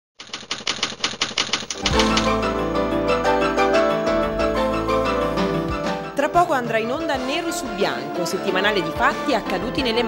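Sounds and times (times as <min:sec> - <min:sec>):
rapid clatter of sharp clicks: 0:00.2 - 0:02.5
news theme music: 0:01.8 - 0:10.0.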